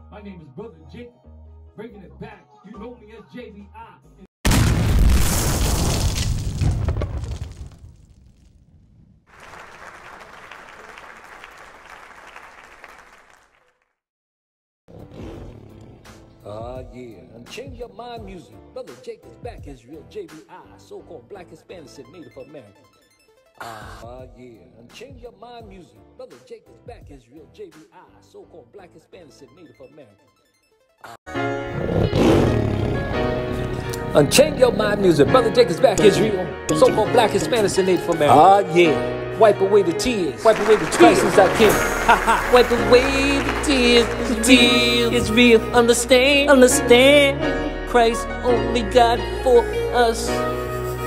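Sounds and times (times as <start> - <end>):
crowd applause: 9.3 - 13.8, 40.4 - 45.1
hip-hop gospel backing track: 16.0 - 22.4, 24.3 - 28.2, 33.0 - 51.0.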